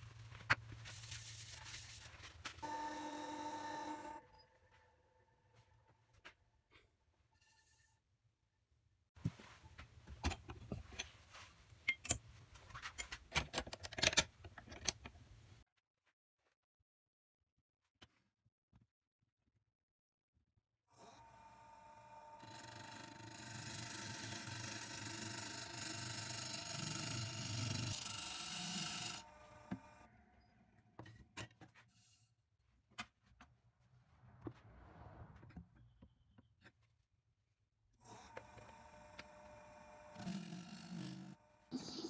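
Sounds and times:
lathe tool scraping wood: 0:22.4 - 0:29.3.

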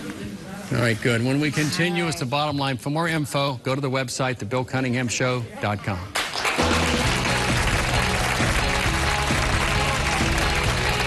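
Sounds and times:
studio audience applause: 0:06.1 - 0:11.0
talk-show music with heavy bass: 0:06.6 - 0:11.0.

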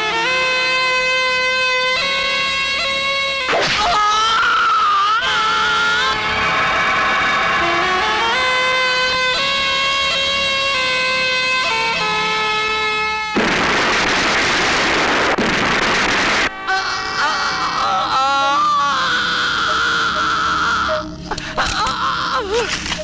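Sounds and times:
car explosion blast: 0:13.4 - 0:16.5.

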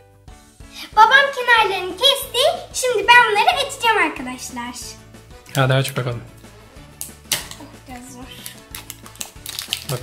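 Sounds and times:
quiet background music: 0:00.0 - 0:10.0
plastic wrapping crinkling and tearing: 0:06.9 - 0:10.0.

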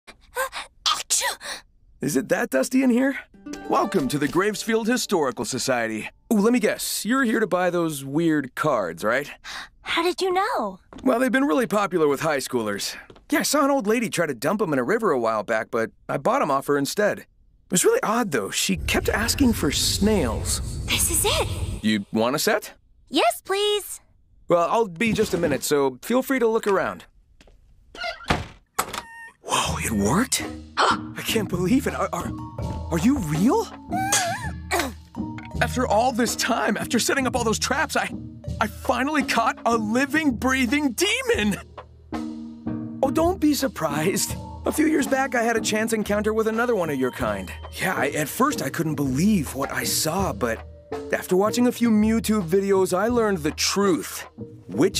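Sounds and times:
cartoon girl gasping: 0:00.1 - 0:01.6
cartoon girl sneezing: 0:00.4 - 0:01.6, 0:34.0 - 0:35.0
music: 0:03.3 - 0:06.7, 0:29.5 - 0:54.9.

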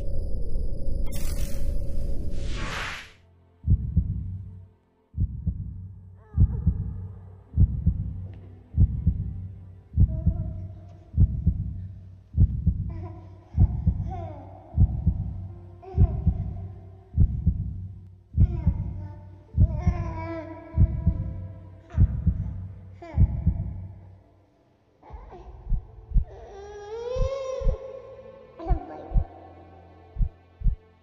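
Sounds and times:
soft music with sustained tones: 0:03.2 - 0:31.0
heartbeat thuds: 0:03.7 - 0:04.4, 0:05.2 - 0:05.8, 0:06.4 - 0:07.0, 0:07.6 - 0:08.2, 0:08.8 - 0:09.4, 0:10.0 - 0:10.5, 0:11.2 - 0:11.8, 0:12.4 - 0:12.9, 0:13.6 - 0:14.1, 0:14.8 - 0:15.4, 0:16.0 - 0:16.5, 0:17.2 - 0:17.8, 0:18.4 - 0:18.9, 0:19.6 - 0:20.1, 0:20.8 - 0:21.3, 0:22.0 - 0:22.5, 0:23.2 - 0:23.7, 0:25.6 - 0:26.4, 0:27.1 - 0:27.8, 0:29.1 - 0:29.3, 0:30.2 - 0:30.8.

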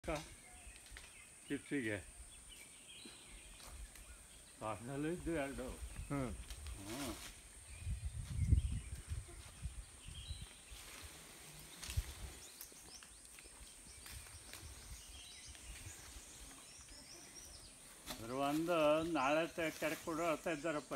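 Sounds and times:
bird chirps: 0:07.6 - 0:19.5.

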